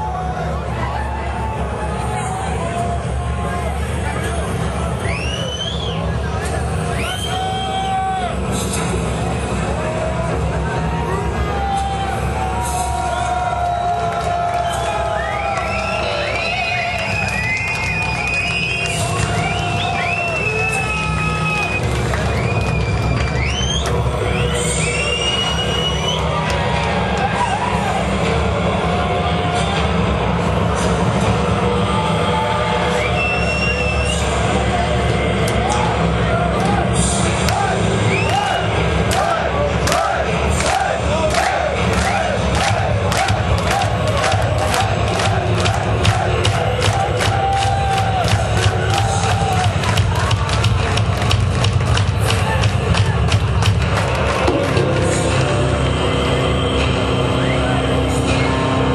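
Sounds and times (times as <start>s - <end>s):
bass and drums rumble: 0.0s - 58.9s
heavy metal band playing: 52.2s - 58.9s.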